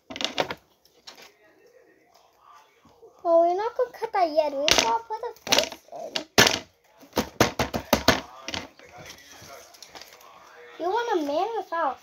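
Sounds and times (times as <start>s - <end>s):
paper handling: 9.0s - 10.4s.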